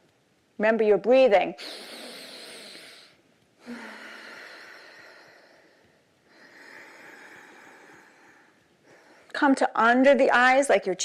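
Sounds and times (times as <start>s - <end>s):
deep breathing through the nose: 1.6s - 9.3s.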